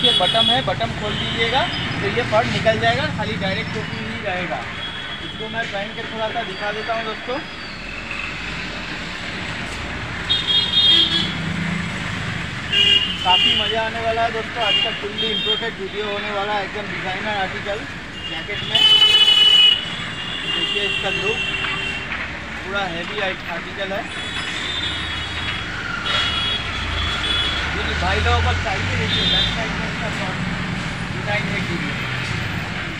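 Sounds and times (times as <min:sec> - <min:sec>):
vehicle horns honking: 0:00.0 - 0:02.0, 0:04.8 - 0:06.8, 0:10.3 - 0:11.5, 0:12.6 - 0:15.9, 0:18.1 - 0:22.2, 0:24.1 - 0:27.8, 0:29.0 - 0:29.7
road traffic noise: 0:00.0 - 0:32.9.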